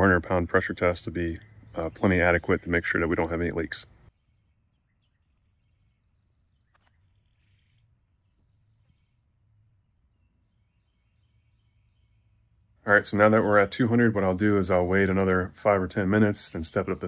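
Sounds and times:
man's voice: 0.0 - 3.9, 12.8 - 17.0.

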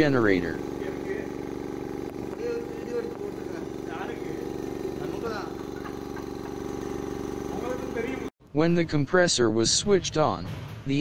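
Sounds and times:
air compressor motor hum: 0.0 - 8.3.

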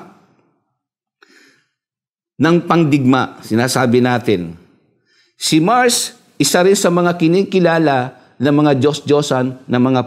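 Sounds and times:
man drawing breath: 1.2 - 1.9
man speaking: 2.4 - 4.7, 5.4 - 10.0.

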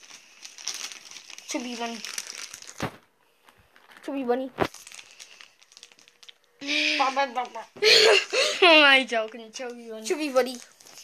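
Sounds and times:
faint crinkling: 0.0 - 11.0.

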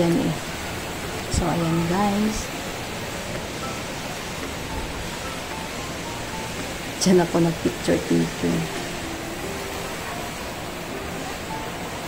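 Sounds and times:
faint background music: 0.0 - 12.0
fountain water falling into pool: 0.0 - 12.0.

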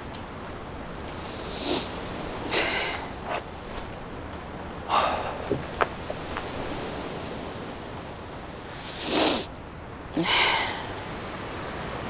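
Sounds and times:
outdoor night hiss: 0.0 - 12.0
short breathy rush: 1.2 - 3.4, 8.7 - 9.5, 10.2 - 11.0.

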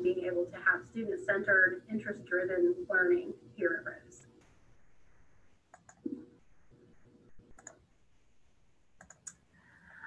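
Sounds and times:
quiet computer mouse clicks: 5.7 - 6.2, 7.4 - 7.8, 9.0 - 9.4.

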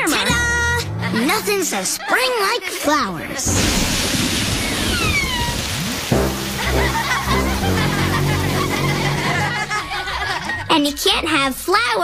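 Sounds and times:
music with sustained chords: 6.1 - 9.9.

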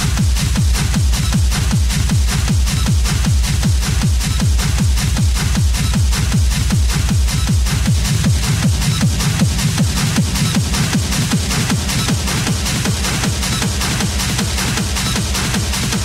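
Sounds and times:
fast kick drum: 0.0 - 16.0.

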